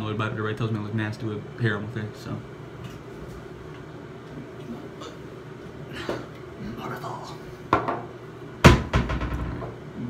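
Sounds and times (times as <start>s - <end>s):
hard objects knocking: 7.7s - 9.8s.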